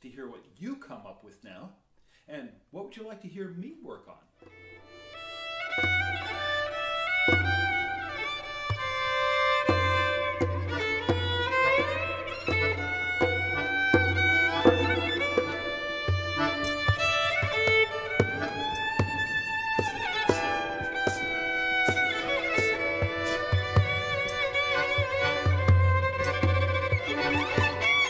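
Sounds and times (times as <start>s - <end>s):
violin melody with slides: 4.4s - 28.0s.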